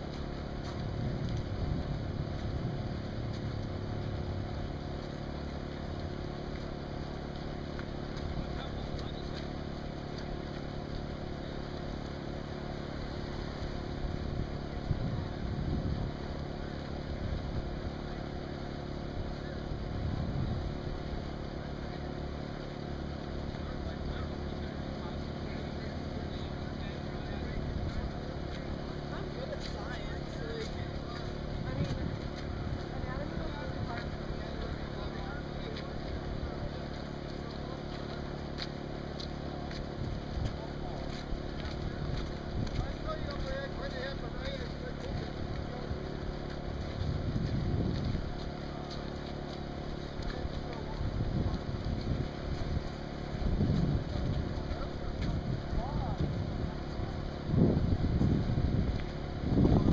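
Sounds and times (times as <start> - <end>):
low droning hum: 0.0 - 59.9.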